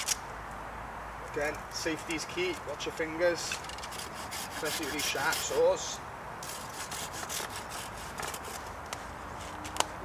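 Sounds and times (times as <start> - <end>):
hand saw cutting wood: 3.8 - 5.8, 6.4 - 8.7.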